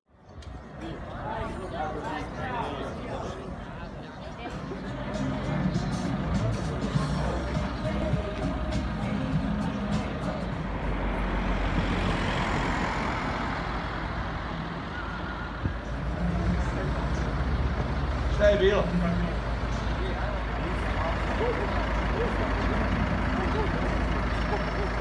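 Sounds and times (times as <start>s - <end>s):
vehicle engines rumbling: 0.1s - 25.0s
vehicle passing: 4.8s - 25.0s.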